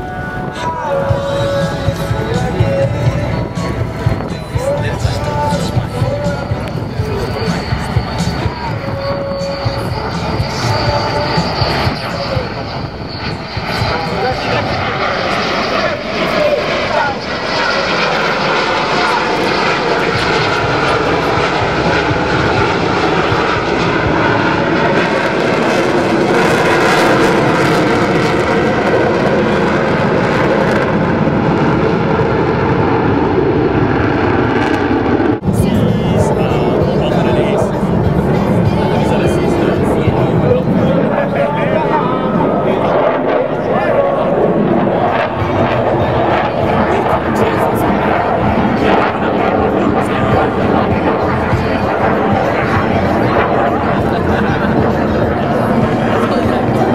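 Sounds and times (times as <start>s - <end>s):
fighter jets flying past: 0.0s - 56.9s.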